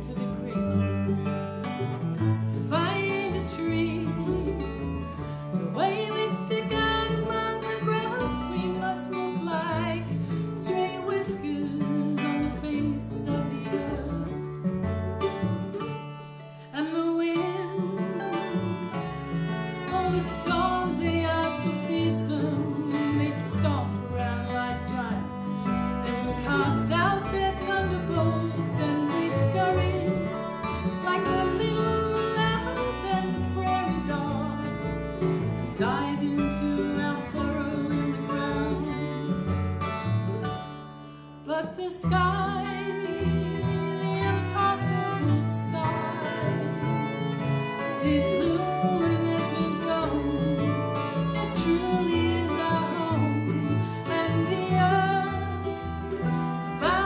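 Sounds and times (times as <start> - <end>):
woman singing: 0.0 - 1.4, 2.5 - 14.7, 16.6 - 39.5, 41.4 - 57.0
mandolin: 0.0 - 57.0
strummed acoustic guitar: 0.0 - 57.0.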